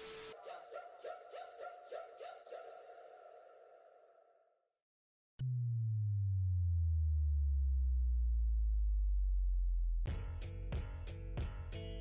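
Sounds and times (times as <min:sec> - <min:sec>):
sub-bass drop: 0:05.4 - 0:12.0
music with sharp rhythmic hits: 0:10.1 - 0:12.0.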